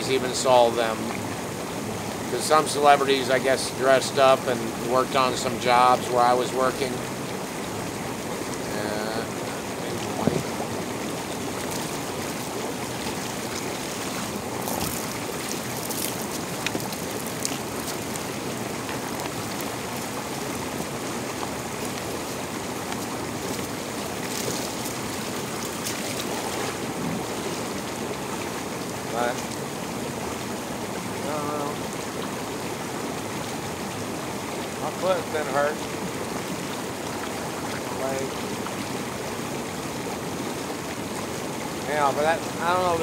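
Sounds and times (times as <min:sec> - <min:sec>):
hot tub water bubbling: 0:00.0 - 0:43.0.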